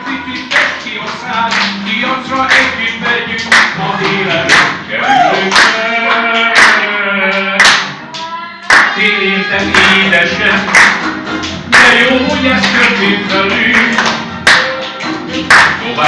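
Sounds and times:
audience clapping along: 0:00.2 - 0:16.0.

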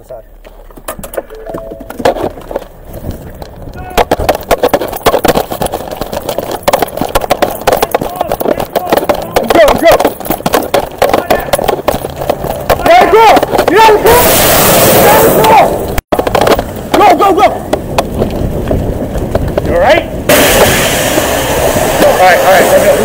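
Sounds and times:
running footsteps and gear clatter: 0:00.0 - 0:14.2, 0:15.2 - 0:23.0
people shouting: 0:12.8 - 0:15.9.

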